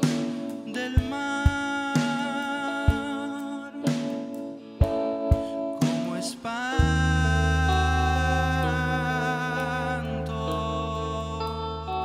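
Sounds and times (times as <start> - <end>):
sustained guitar chords: 0.0 - 12.0
deep bass note: 6.8 - 9.3.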